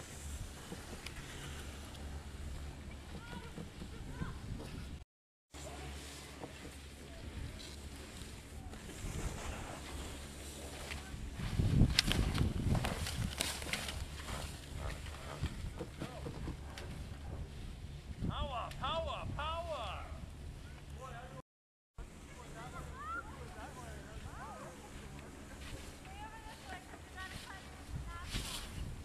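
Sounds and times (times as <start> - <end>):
skis scraping through snow: 0.0 - 3.0, 5.6 - 17.9, 23.6 - 29.0
wind rushing over microphone: 0.0 - 5.0, 11.0 - 20.7, 27.0 - 29.0.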